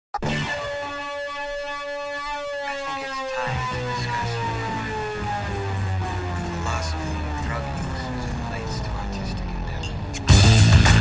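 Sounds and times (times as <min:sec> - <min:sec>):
synthesizer tones sliding down: 0:00.2 - 0:11.0
deep bass: 0:03.5 - 0:11.0.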